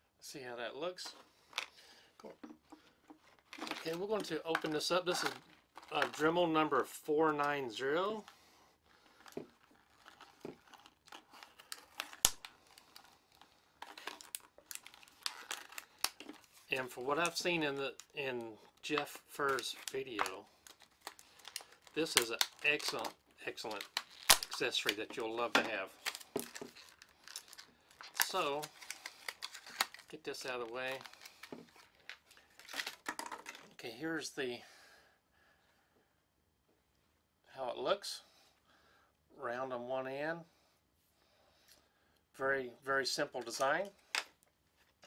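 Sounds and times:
blister pack crinkling torn open: 0:03.3 - 0:06.4, 0:09.2 - 0:33.8
light clicks of plastic package: 0:18.9 - 0:30.1.

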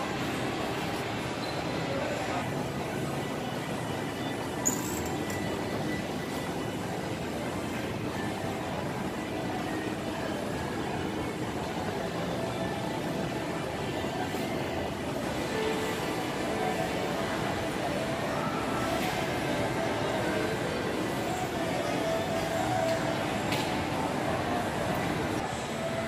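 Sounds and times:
shopping mall ambience: 0:00.0 - 0:26.0.

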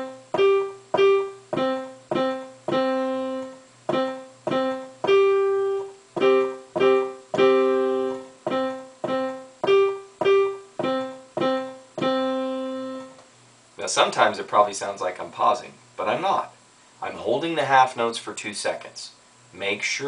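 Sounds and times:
digital piano playing a simple tune: 0:00.0 - 0:13.2.

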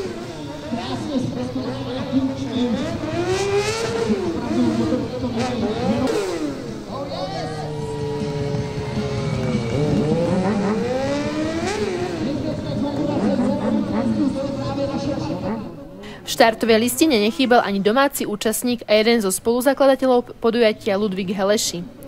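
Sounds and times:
motorcycle engine revving: 0:00.0 - 0:15.9.

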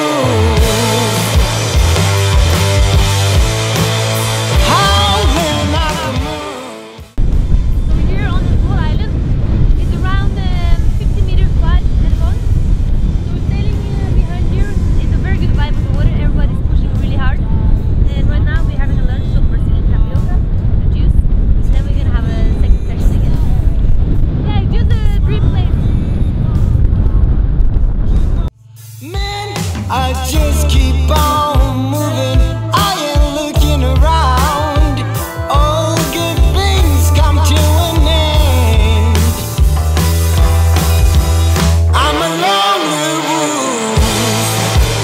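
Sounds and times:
wind buffeting microphone: 0:07.2 - 0:28.5
woman talking: 0:07.9 - 0:12.4, 0:13.3 - 0:23.8, 0:24.4 - 0:25.9.

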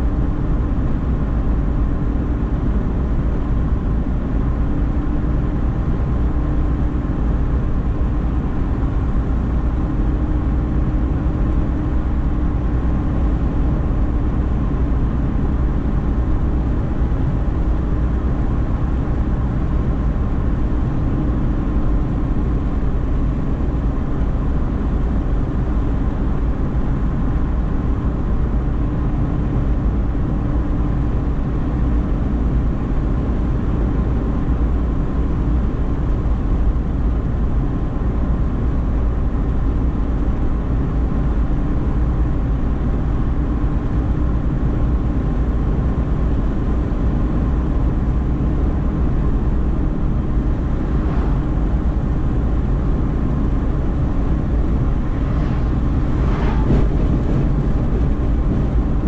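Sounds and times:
car engine and tyre drone: 0:00.0 - 0:59.0.

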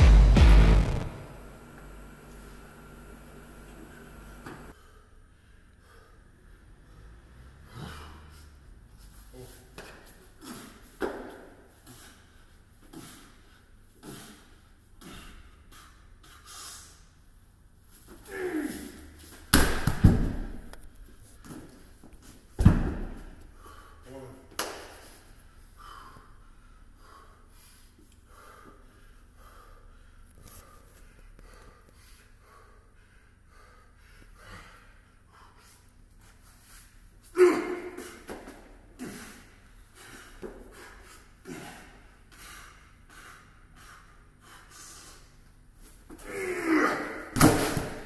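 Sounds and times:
lifter shouting and grunting: 0:37.4 - 0:38.0, 0:46.2 - 0:47.4.

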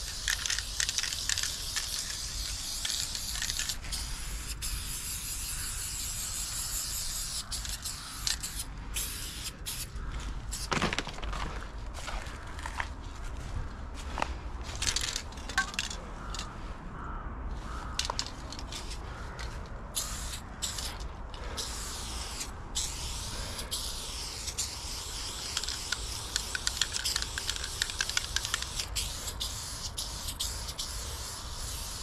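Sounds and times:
spray paint can hissing: 0:00.0 - 0:10.7, 0:17.8 - 0:32.0.

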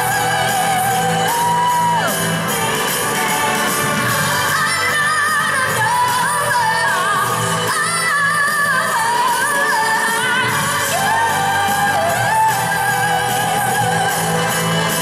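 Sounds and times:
amplified backing track: 0:00.0 - 0:15.0
woman singing pop song: 0:00.0 - 0:15.0.

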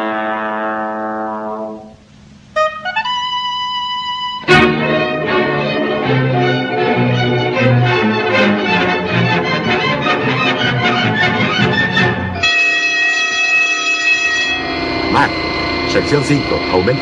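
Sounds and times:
orchestral music: 0:03.7 - 0:17.0.

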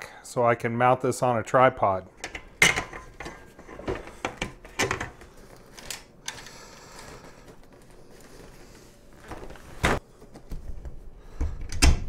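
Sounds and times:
fabric and metal scraping: 0:07.0 - 0:10.0.

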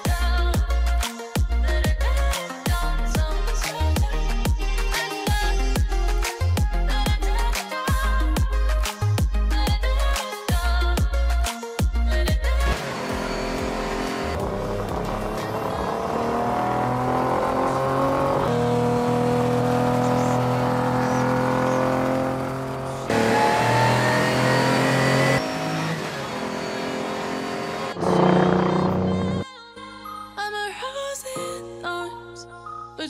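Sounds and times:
music: 0:00.0 - 0:20.2, 0:28.2 - 0:33.0
race car engine pulling hard: 0:12.7 - 0:29.4.

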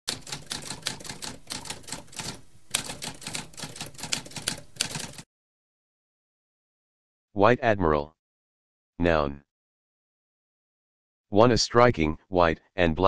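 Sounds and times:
typewriter key strikes: 0:00.1 - 0:05.2.

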